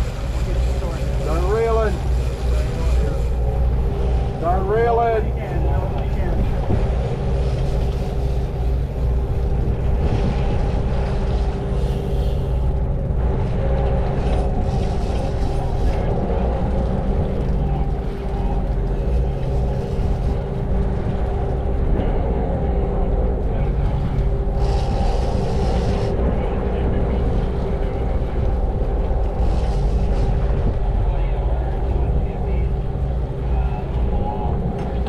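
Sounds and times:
boat engines droning: 0:00.0 - 0:35.0
steady hum: 0:00.0 - 0:35.0.

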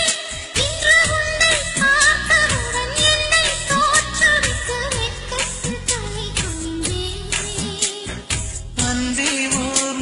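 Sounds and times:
steady percussion beat: 0:00.0 - 0:10.0.

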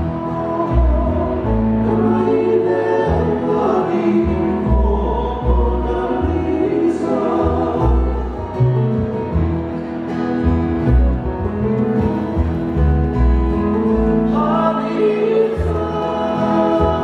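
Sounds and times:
man singing: 0:00.0 - 0:08.7, 0:14.2 - 0:17.0
strummed acoustic guitars: 0:00.0 - 0:17.0
upright bass: 0:00.0 - 0:17.0.

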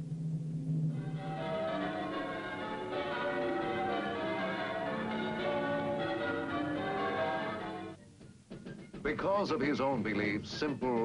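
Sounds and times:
large bells pealing: 0:01.0 - 0:07.9.

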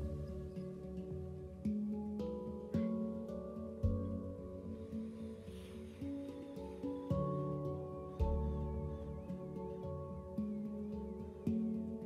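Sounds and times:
soft slow instrumental music: 0:00.0 - 0:12.0.

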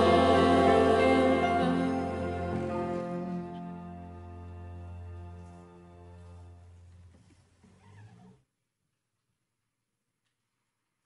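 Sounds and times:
held chord of devotional song: 0:00.0 - 0:06.2.

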